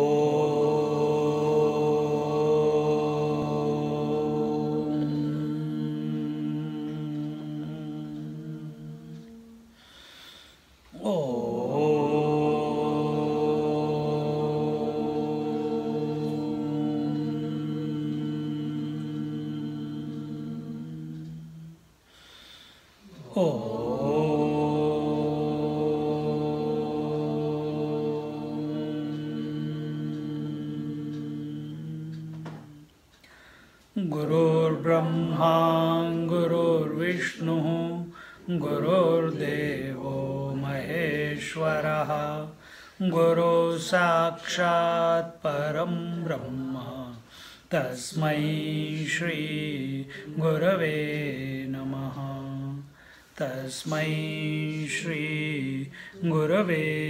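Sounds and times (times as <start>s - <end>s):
man chanting low om: 11.0s - 18.8s, 34.0s - 57.0s.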